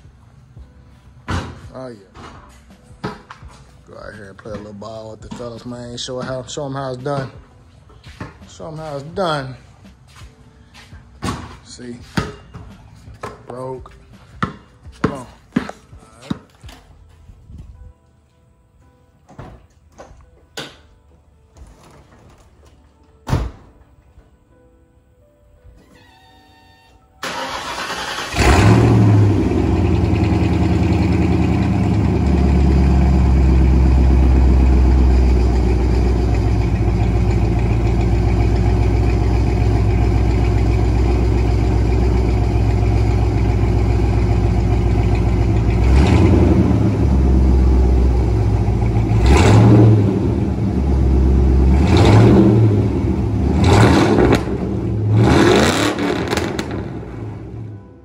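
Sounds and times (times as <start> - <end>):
car engine starting: 27.2 - 57.8.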